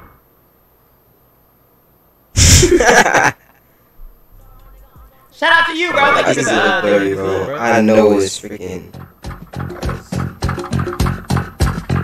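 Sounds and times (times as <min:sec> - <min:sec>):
loud vocal outburst: 0:02.4 - 0:03.4, 0:05.4 - 0:08.3.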